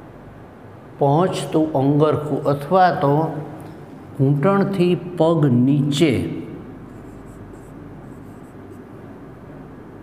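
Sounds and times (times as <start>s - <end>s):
person speaking: 4.2s - 8.5s
marker pen on whiteboard: 6.8s - 8.9s.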